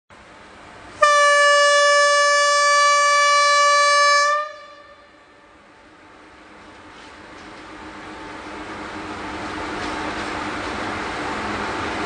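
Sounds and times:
faint train rumble: 0.1s - 12.0s
locomotive horn blast: 1.0s - 5.6s.

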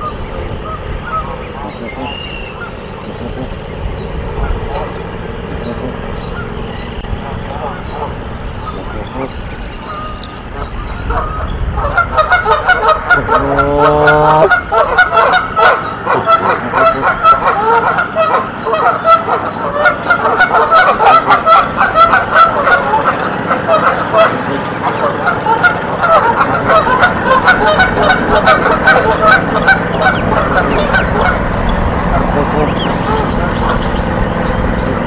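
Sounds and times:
geese honking: 0.0s - 35.0s.

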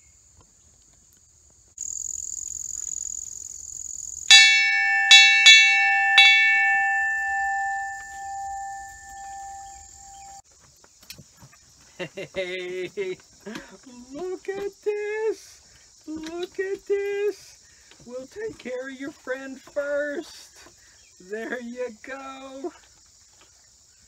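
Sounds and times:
metal dinner bell ringing: 4.3s - 10.4s.

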